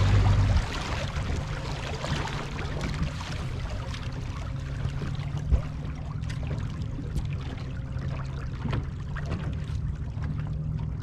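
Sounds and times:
small waves lapping against boat hull: 0.0 - 11.0
steady low rumble: 0.0 - 11.0.

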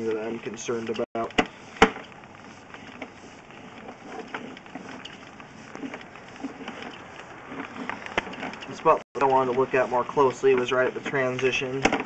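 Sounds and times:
cable clicking and rustling on reel: 0.0 - 12.0.

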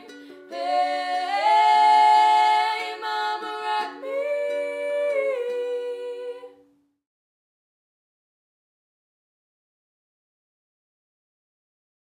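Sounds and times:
women singing in harmony: 0.0 - 6.6.

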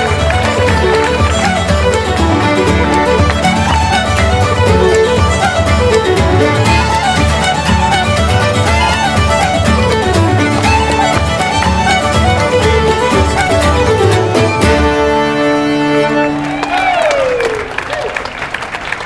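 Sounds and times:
fiddle playing folk tune: 0.0 - 16.9
guitar accompaniment: 0.0 - 17.0.

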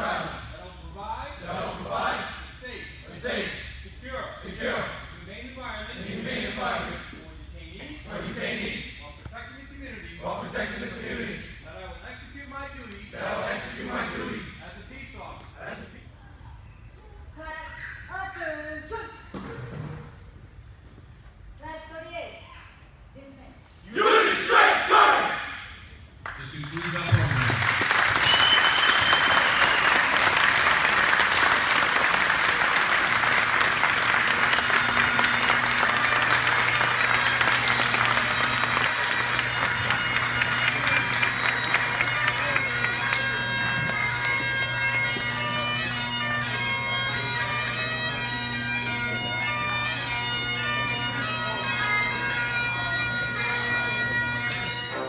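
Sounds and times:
group shout: 24.0 - 25.6
applause and cheering: 26.2 - 44.7
bagpipes playing: 28.0 - 55.0.

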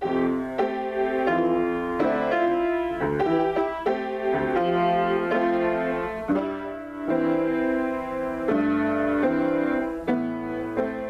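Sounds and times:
piano playing slow chords: 0.0 - 11.0.

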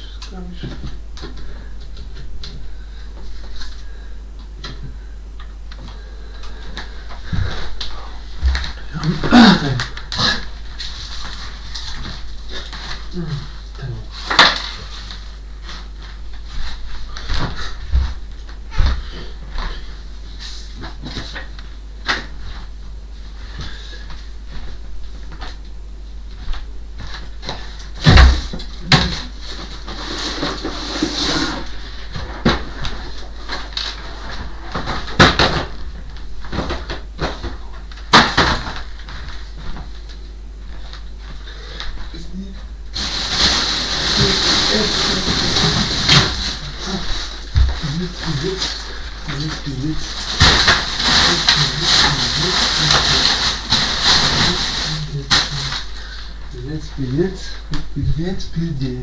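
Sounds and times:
person speaking: 0.0 - 1.1, 42.1 - 55.9, 56.5 - 59.0
knocks and thuds: 28.0 - 29.3
rustling and handling: 35.8 - 56.4.

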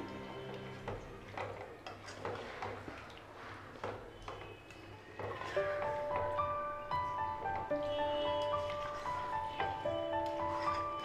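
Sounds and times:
quiet background music: 0.0 - 3.3, 3.9 - 11.0
spatula scraping a pot: 10.4 - 11.0.

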